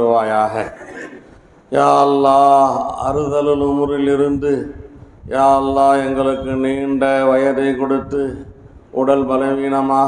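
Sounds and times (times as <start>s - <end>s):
man chanting a prayer: 0.0s - 0.8s, 1.7s - 10.0s.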